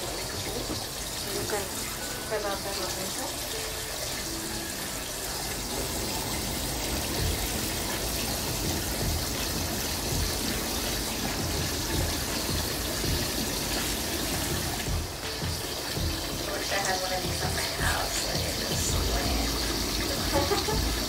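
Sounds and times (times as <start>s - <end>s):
water streams pouring: 0.0s - 21.0s.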